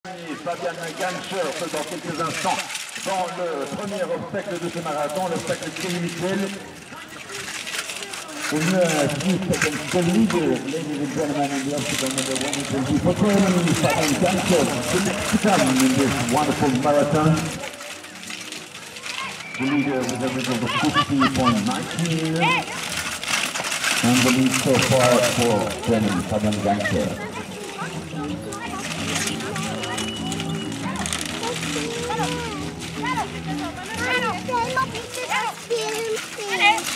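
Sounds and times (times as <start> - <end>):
people's voices: 0.0 - 36.9
announcer speaking: 19.4 - 22.5.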